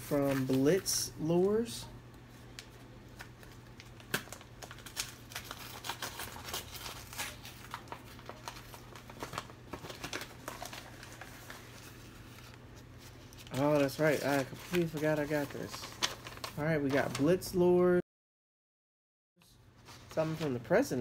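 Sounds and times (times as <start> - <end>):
paper envelope tearing and rustling: 2.5 - 17.3.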